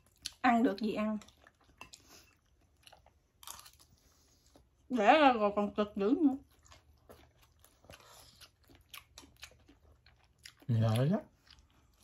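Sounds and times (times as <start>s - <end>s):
chewing and crunching food: 0.0s - 12.0s.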